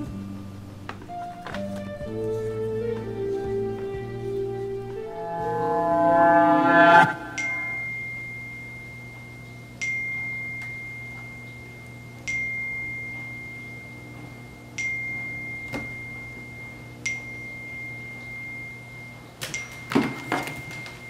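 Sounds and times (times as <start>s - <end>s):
steady low hum: 0.0s - 19.9s
high chime tone: 5.0s - 21.0s.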